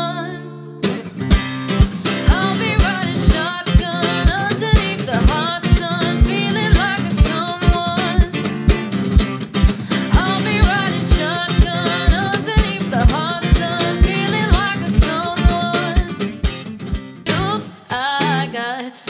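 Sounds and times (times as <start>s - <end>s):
person singing: 0.0s - 0.6s, 1.9s - 8.6s, 9.6s - 16.3s, 17.3s - 19.0s
acoustic guitar strumming: 0.0s - 18.6s
deep thumping beat: 4.3s - 10.8s, 13.0s - 15.8s, 16.8s - 17.2s.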